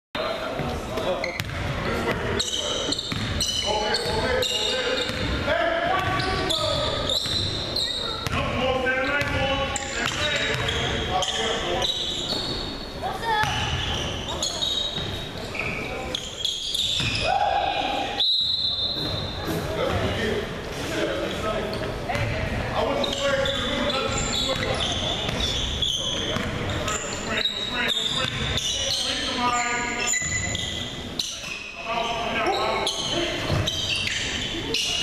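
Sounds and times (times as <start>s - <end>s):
players' voices echoing: 0.2s - 35.0s
sneakers squeaking: 0.3s - 35.0s.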